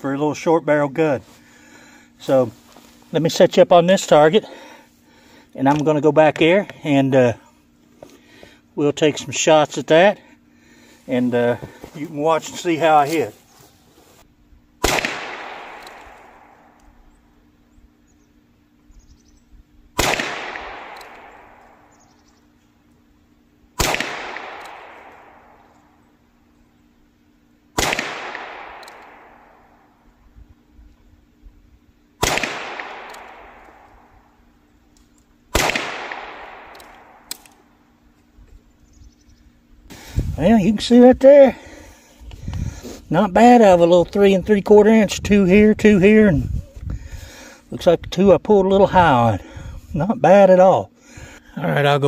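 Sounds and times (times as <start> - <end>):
revolver shots echoing: 14.8 - 16.8, 20.0 - 21.9, 23.8 - 25.7, 27.8 - 29.7, 32.2 - 34.1, 35.5 - 37.7.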